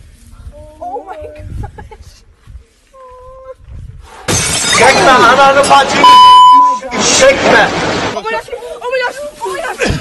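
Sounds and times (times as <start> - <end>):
low rumbling wind noise: 0.0 - 4.2.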